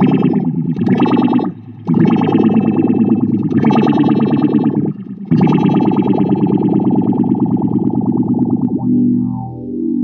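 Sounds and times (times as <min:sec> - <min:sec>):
overdriven electric guitar: 0:00.0 - 0:08.9.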